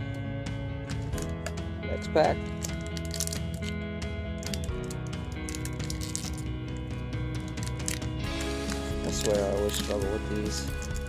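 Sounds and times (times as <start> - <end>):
background music: 0.0 - 11.0
foil wrapper crinkling: 0.9 - 11.0.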